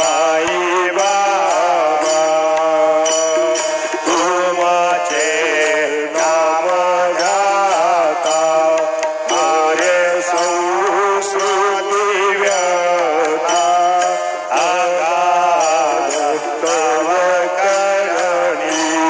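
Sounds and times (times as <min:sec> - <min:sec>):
high jingle keeping the beat: 0:00.0 - 0:19.0
person singing a hymn: 0:00.0 - 0:19.0.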